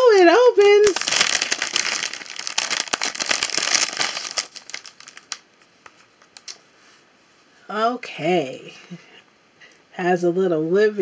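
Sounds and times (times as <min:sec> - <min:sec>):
cellophane bag crinkling: 0:00.0 - 0:06.6.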